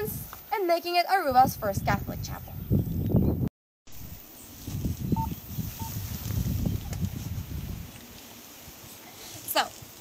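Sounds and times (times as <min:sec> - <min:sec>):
wind buffeting microphone: 0:01.2 - 0:03.5, 0:04.6 - 0:09.0.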